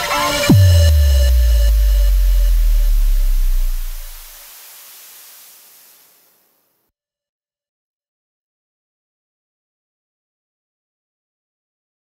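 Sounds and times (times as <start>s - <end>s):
hiss-like wash: 0.1s - 6.8s
deep bass boom: 0.5s - 4.4s.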